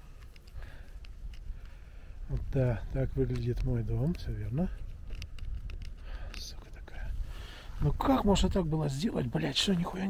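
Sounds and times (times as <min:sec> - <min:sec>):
handling clicks and rustles: 0:00.0 - 0:07.1
low wind rumble on microphone: 0:00.0 - 0:10.0.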